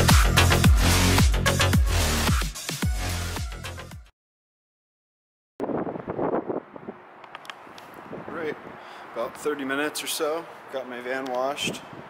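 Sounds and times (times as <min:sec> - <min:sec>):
wind buffeting microphone: 0:05.6 - 0:09.6, 0:11.5 - 0:12.0
outdoor background hiss: 0:05.7 - 0:12.0.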